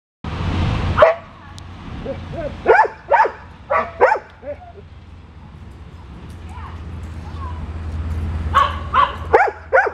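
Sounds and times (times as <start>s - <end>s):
dog barking: 1.0s - 1.3s, 2.1s - 4.6s, 8.5s - 9.9s.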